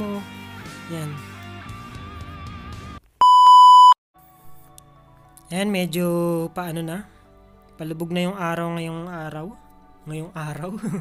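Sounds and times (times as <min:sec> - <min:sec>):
electronic test tone beep: 0:03.2 - 0:04.0
soft background music: 0:04.2 - 0:11.0.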